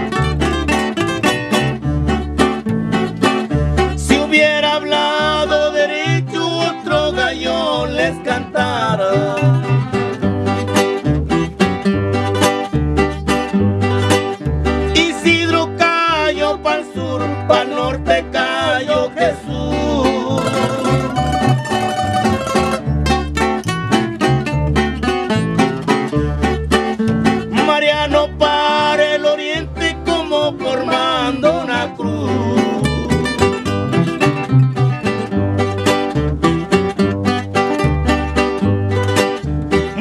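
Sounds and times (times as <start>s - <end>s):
bass line: 0.0s - 40.0s
plucked string melody: 0.0s - 40.0s.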